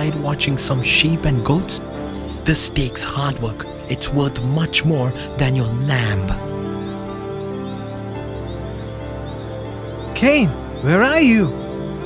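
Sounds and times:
cricket chirping: 0:00.0 - 0:12.0
music of held notes: 0:00.0 - 0:12.0.

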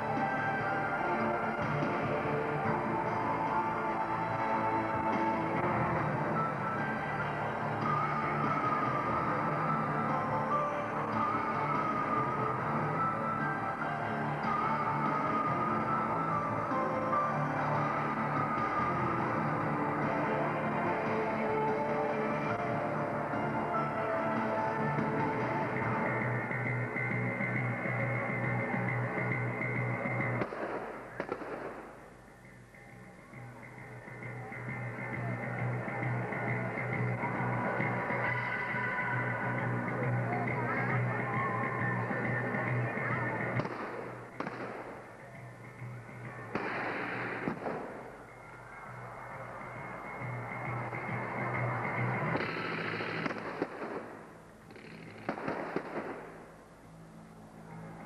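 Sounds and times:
background music: 0:00.0 - 0:58.0
gunfire and pyrotechnic bangs: 0:30.4 - 0:32.2, 0:43.6 - 0:45.2, 0:46.5 - 0:48.2, 0:52.4 - 0:56.6
sharp cracks: 0:30.4 - 0:32.2, 0:43.6 - 0:45.2, 0:46.5 - 0:48.2, 0:52.4 - 0:56.6.

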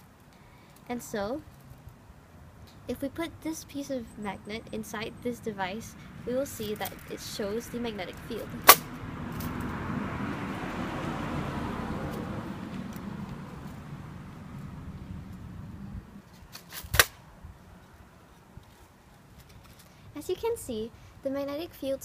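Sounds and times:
vehicle passing by: 0:01.5 - 0:16.4.

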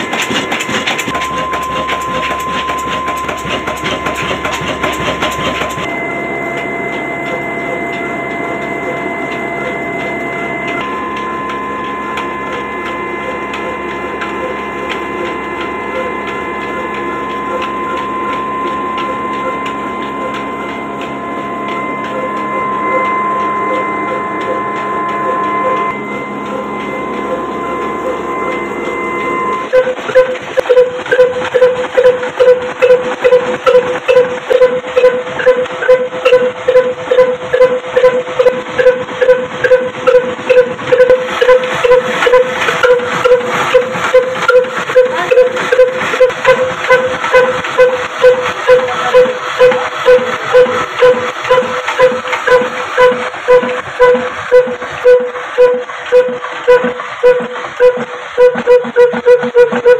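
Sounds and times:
slow diesel engine beating: 0:00.0 - 0:59.9
steady ringing tone: 0:00.0 - 0:59.9.

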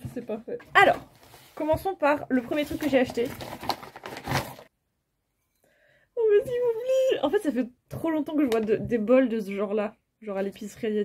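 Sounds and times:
paper wrapping crinkling: 0:02.4 - 0:04.7.

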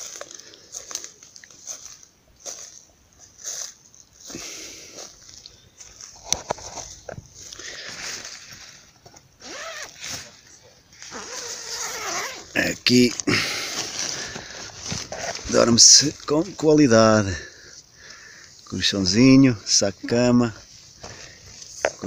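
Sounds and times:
tent fabric rustling: 0:00.0 - 0:16.6.

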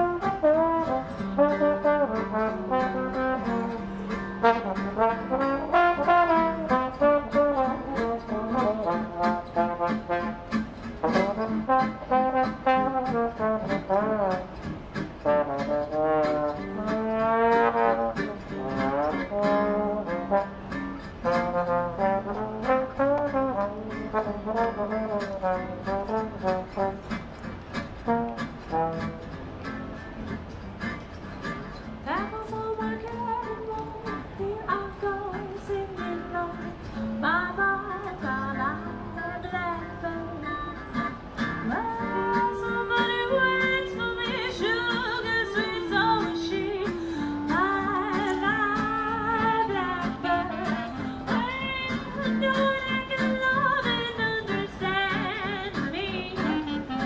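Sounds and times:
trombone: 0:00.0 - 0:27.4, 0:28.0 - 0:29.6
street band playing jazz: 0:00.0 - 0:57.0
woman singing: 0:32.0 - 0:57.0.

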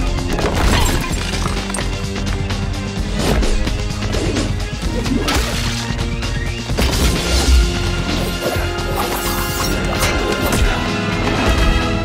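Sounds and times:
film score music: 0:00.0 - 0:12.0.

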